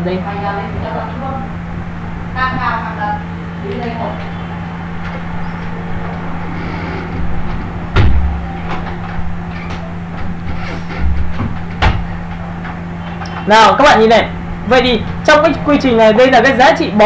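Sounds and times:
steady low hum: 0:00.0 - 0:17.0
sharp knocks: 0:05.0 - 0:13.5
brief low thuds: 0:06.1 - 0:12.1.

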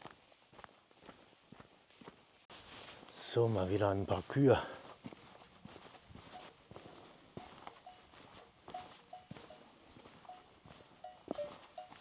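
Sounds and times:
footsteps: 0:00.0 - 0:12.0
cowbells clanking: 0:07.4 - 0:12.0.

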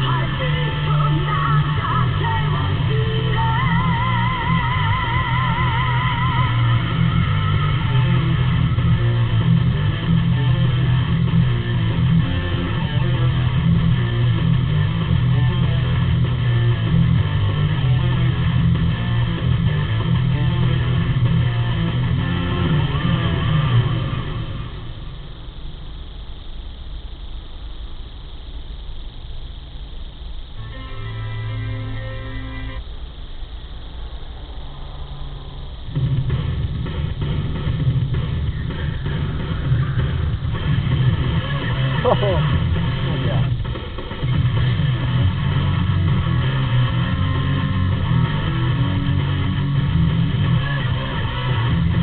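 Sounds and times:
guitar music from car stereo: 0:00.0 - 0:25.3, 0:30.6 - 0:32.9, 0:35.9 - 0:52.0.

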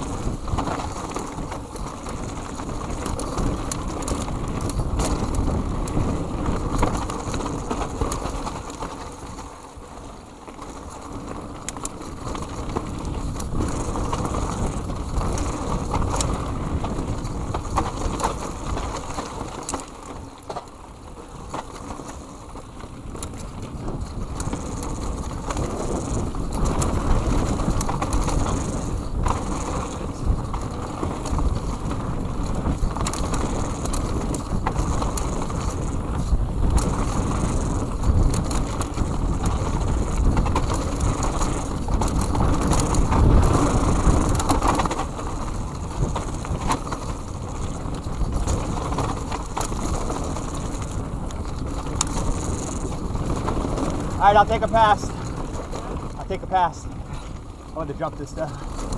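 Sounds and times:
bike clicks and rattles: 0:00.0 - 0:58.9
bike tyres rumbling on dirt: 0:00.0 - 0:58.9
wind buffeting microphone: 0:00.0 - 0:58.9.

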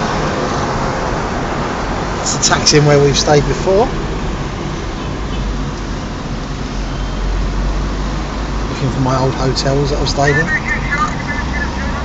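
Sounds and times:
road and engine rumble in car: 0:00.0 - 0:12.0.

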